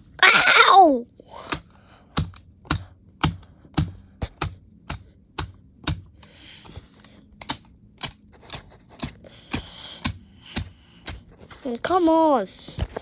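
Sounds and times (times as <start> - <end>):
paper cutouts tapping together: 1.5 - 6.2, 7.4 - 12.0.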